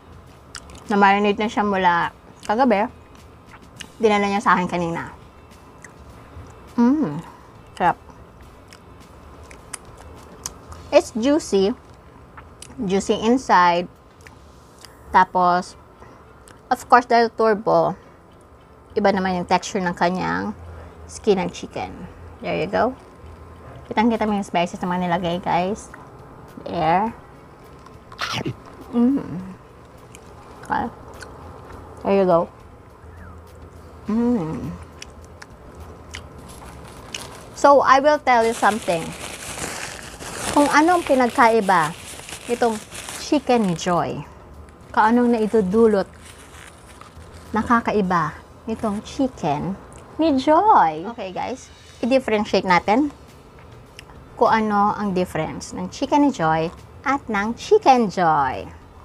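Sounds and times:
wet mouth clicks: 0:00.5 - 0:00.9
woman speaking: 0:00.8 - 0:03.0, 0:03.8 - 0:05.2, 0:06.7 - 0:08.0, 0:10.8 - 0:11.8, 0:12.7 - 0:13.9, 0:15.2 - 0:15.8, 0:16.7 - 0:18.0, 0:19.0 - 0:23.0, 0:23.9 - 0:25.9, 0:26.5 - 0:27.2, 0:30.6 - 0:31.0, 0:32.0 - 0:32.6, 0:34.1 - 0:35.0, 0:37.6 - 0:39.3, 0:40.4 - 0:46.1, 0:47.5 - 0:53.2, 0:54.4 - 0:58.8
faint chewing: 0:34.6 - 0:37.6.

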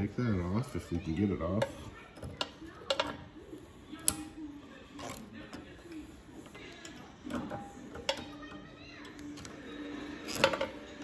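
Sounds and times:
pliers tapping metal: 0:01.6 - 0:03.2, 0:04.0 - 0:04.4, 0:06.8 - 0:09.5.

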